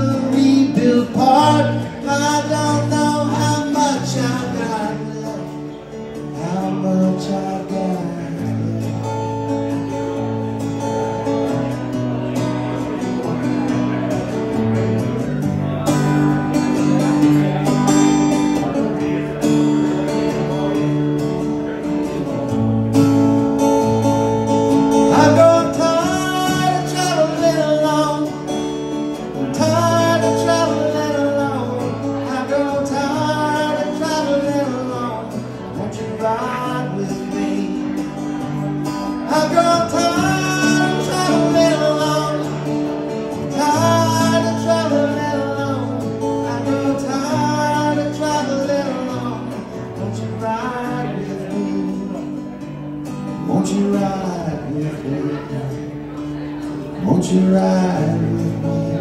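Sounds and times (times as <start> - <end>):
man singing: 0.0 - 10.9, 23.2 - 59.0
acoustic guitar strummed: 0.0 - 59.0.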